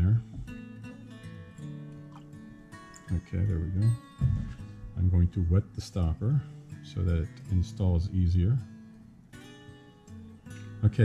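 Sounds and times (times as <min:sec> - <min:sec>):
plucked acoustic guitar music: 0:00.0 - 0:11.0.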